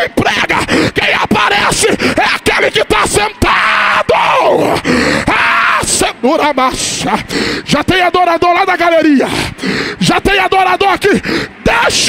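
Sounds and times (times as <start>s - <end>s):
man shouting into a microphone: 0.0s - 12.0s.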